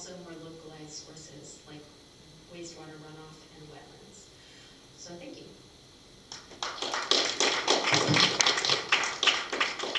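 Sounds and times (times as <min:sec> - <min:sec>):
small audience applauding: 0:06.3 - 0:09.9.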